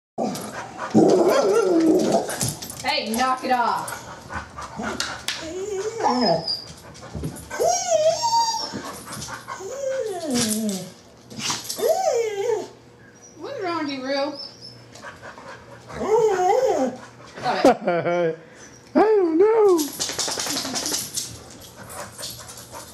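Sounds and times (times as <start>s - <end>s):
dog whining faintly: 5.4s - 6.8s, 7.5s - 14.9s
dog claws clicking on tile: 19.8s - 22.9s.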